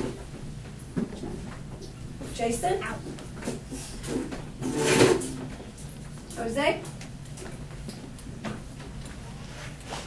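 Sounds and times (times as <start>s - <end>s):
chair scraping over floor: 4.0s - 5.6s.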